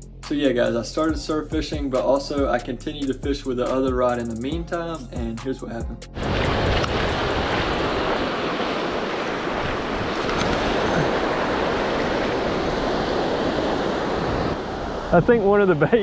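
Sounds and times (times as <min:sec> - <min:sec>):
ocean surf rushing: 0:06.2 - 0:16.0
wind buffeting microphone: 0:06.2 - 0:16.0.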